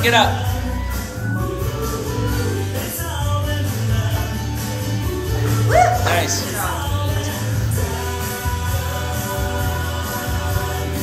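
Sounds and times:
heavy bass line: 0.0 - 11.0
person singing: 0.0 - 11.0.

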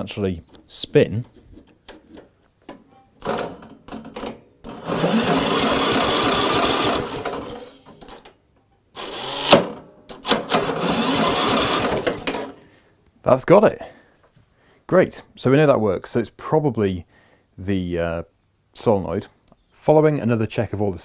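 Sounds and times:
starter motor cranking engine: 4.7 - 8.2, 9.0 - 12.6.

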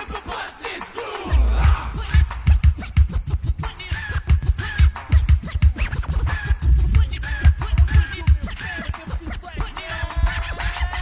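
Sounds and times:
drum machine beat: 0.0 - 11.0
turntable scratching: 0.0 - 11.0.

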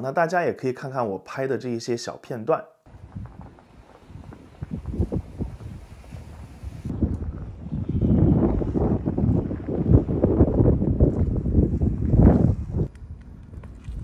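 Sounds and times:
wind buffeting a microphone: 2.9 - 14.0.

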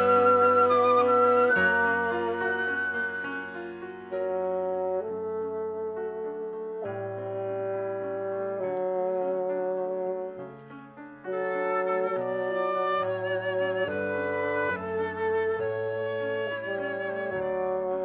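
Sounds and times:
bassoon sustained notes: 0.0 - 10.5
piano: 0.0 - 18.0.

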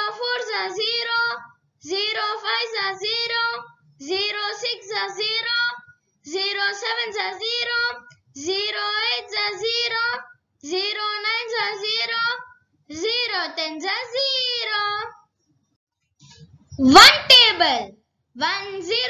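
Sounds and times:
child chanting sing-song: 0.0 - 12.4.

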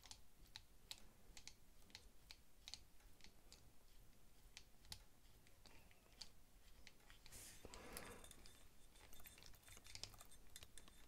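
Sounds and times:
screwdriver clicks and scratching: 0.0 - 11.0.

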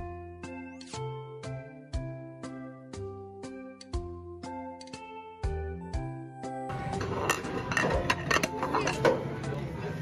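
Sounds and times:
plastic plates clinking: 6.8 - 9.4.

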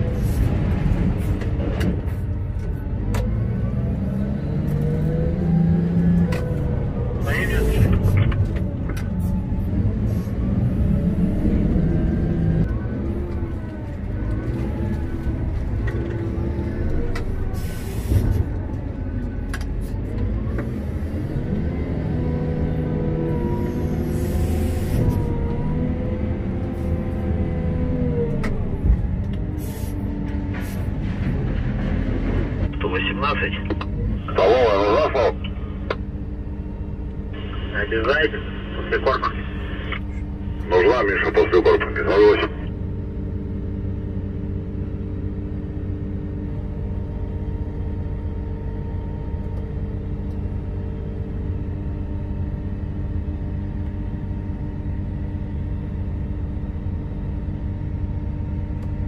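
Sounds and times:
wheel loader engine and hydraulics: 0.0 - 59.0.

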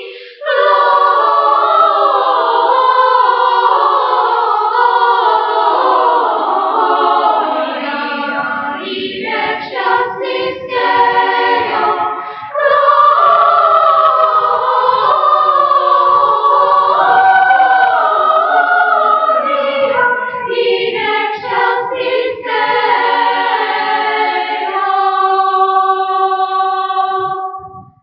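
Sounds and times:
children's choir singing: 0.0 - 27.7.

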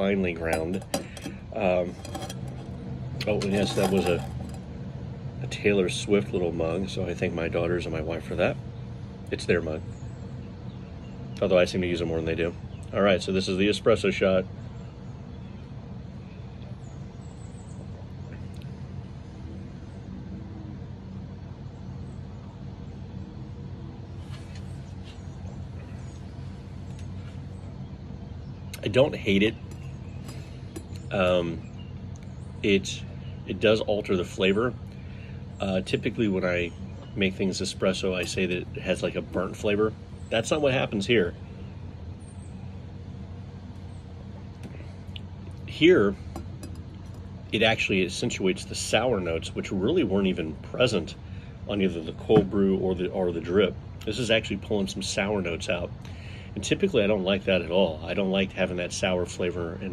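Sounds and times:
low outdoor ambient hum: 0.0 - 59.9.

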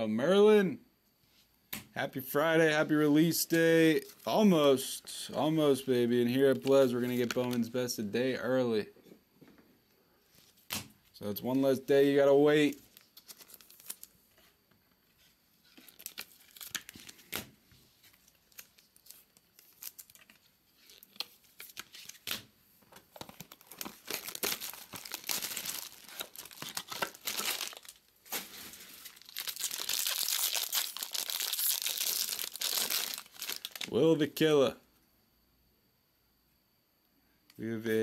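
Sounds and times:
foil wrapper crinkling and tearing: 12.7 - 14.2, 15.6 - 22.5, 23.1 - 34.0.

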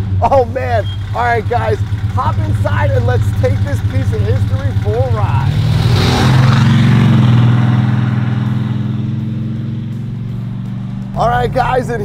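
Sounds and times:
car engine pulsing exhaust: 0.0 - 12.0.

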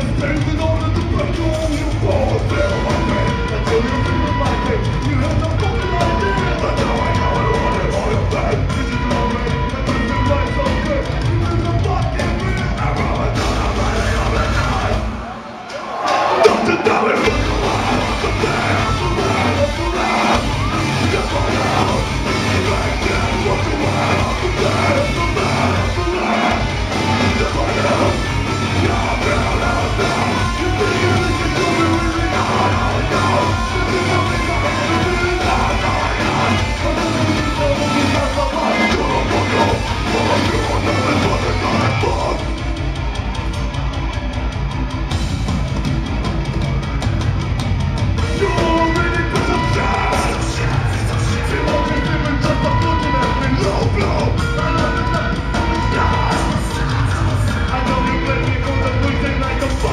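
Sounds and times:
harsh shouted vocals: 0.0 - 47.3, 48.1 - 59.9
heavy guitars and bass: 0.0 - 59.9
metal band playing live: 0.0 - 59.9
rapid cymbal and drum hits: 0.0 - 59.9.

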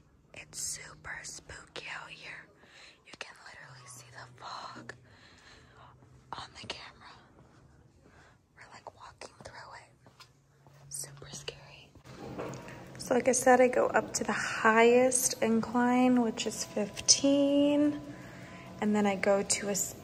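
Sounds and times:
faint low hum: 0.0 - 20.0
person whispering: 0.4 - 5.1, 6.3 - 7.4, 8.5 - 10.0, 10.9 - 12.0.

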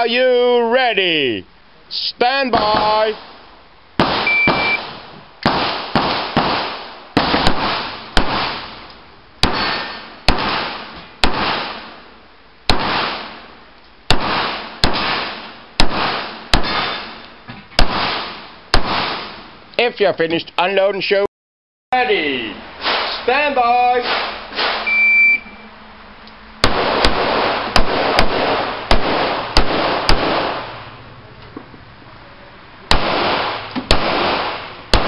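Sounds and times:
pistol shots: 2.5 - 3.4, 4.0 - 12.0, 12.7 - 13.5, 14.1 - 17.2, 17.8 - 19.5, 24.0 - 24.9, 26.6 - 31.0, 32.9 - 35.0
shot timer beep: 4.2 - 4.8, 24.8 - 25.6.

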